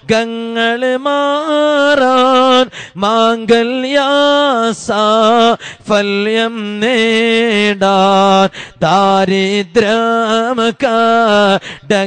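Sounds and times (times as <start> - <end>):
man singing a devotional chant: 0.0 - 12.0.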